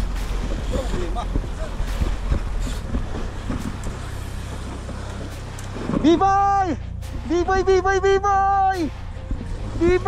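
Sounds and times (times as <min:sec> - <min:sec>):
sea noise: 0:00.0 - 0:10.0
wind noise on microphone: 0:00.0 - 0:10.0
person shouting long call: 0:06.2 - 0:06.8, 0:07.4 - 0:08.9.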